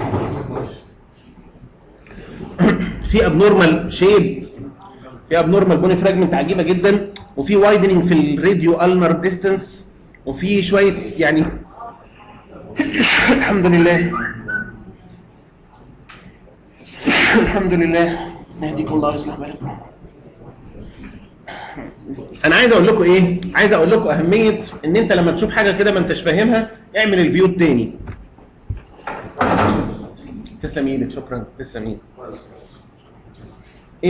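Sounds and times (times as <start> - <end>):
man's voice: 2.5 - 4.6.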